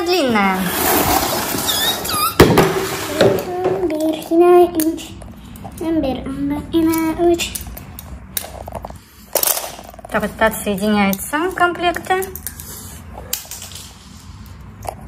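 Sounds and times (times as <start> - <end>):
child making squeaky sounds: 1.7 - 2.4.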